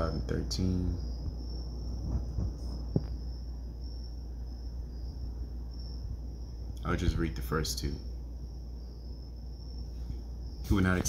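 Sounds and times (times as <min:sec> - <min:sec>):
high-pitched whine: 0:00.0 - 0:11.0
low hum: 0:00.0 - 0:11.0.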